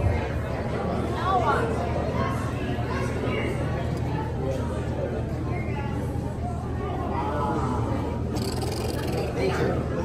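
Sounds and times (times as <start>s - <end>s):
indistinct voices chatting: 7.8s - 9.9s.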